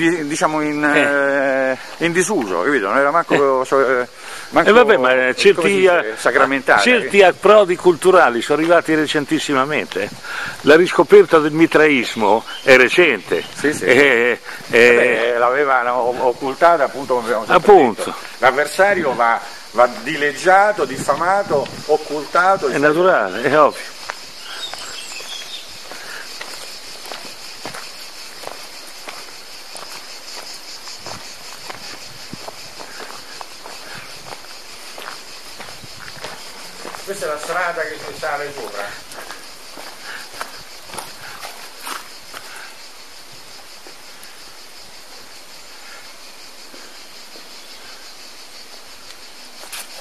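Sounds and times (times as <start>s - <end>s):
high-pitched insect sound: 0.0s - 50.0s
footsteps of people walking: 1.8s - 15.3s, 16.2s - 44.4s.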